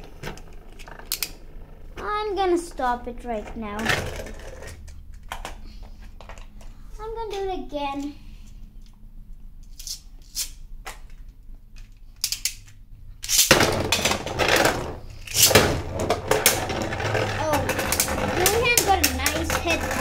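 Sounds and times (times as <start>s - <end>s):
spinning tops whirring: 13.3s - 20.0s
spinning tops clacking: 15.2s - 20.0s.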